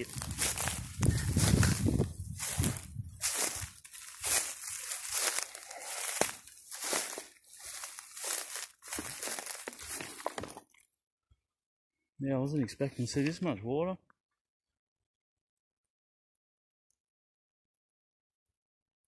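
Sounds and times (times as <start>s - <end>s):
vegetation rustling: 0.0s - 10.5s
footsteps through dry leaves: 0.0s - 10.6s.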